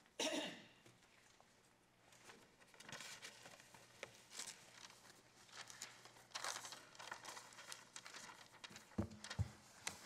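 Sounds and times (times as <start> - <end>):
paper rustling: 2.2 - 10.0
papers thumping on wooden lectern: 8.9 - 9.6.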